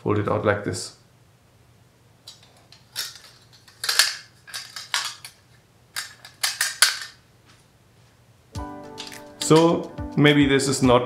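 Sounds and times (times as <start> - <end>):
metal music stand clacking: 9.0 - 9.8.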